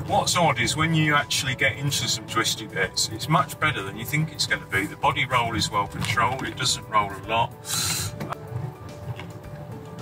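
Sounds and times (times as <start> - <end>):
soft background music: 0.0 - 10.0
car cabin rumble: 7.9 - 10.0.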